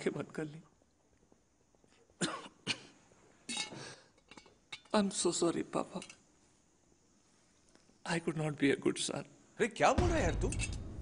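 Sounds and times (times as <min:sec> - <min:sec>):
man coughing: 0:02.2 - 0:03.0.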